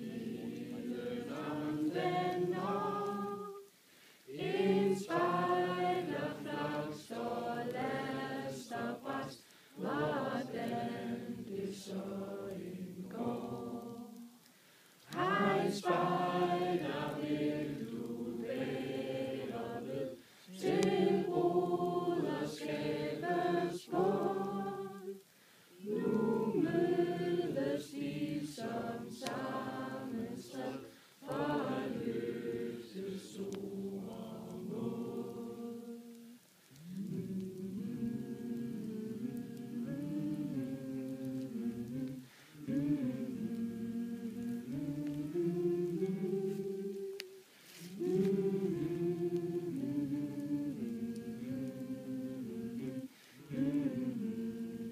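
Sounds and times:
group of voices singing: 0.0 - 54.9.

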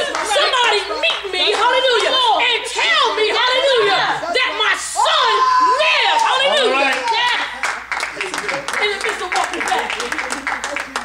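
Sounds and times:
preacher exclaiming loudly: 2.1 - 7.6
hand claps: 6.2 - 11.0.

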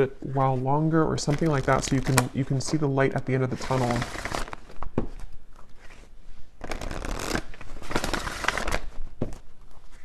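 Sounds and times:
cards being shuffled: 1.2 - 2.4, 3.5 - 10.0.

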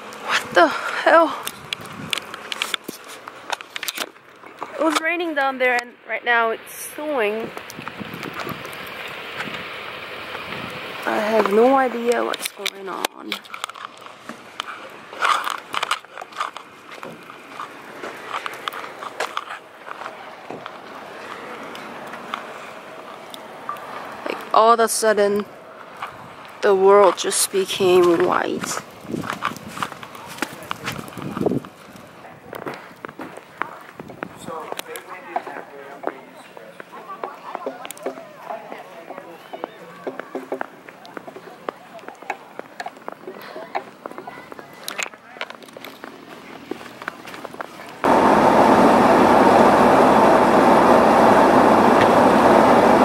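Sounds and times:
wind and falling snow hiss: 0.0 - 4.0, 4.8 - 33.1, 48.0 - 53.0
faint voices: 17.5 - 24.8, 30.0 - 53.0.

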